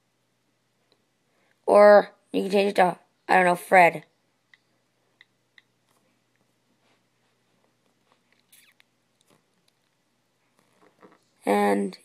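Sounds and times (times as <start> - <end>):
soft scuffing: 5.9 - 8.3.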